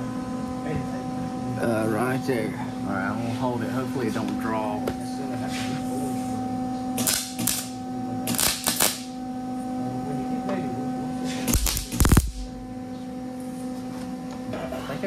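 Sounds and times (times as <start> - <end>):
electrical hum: 0.0 - 15.0
welding arc crackling: 7.0 - 9.2, 11.5 - 12.6.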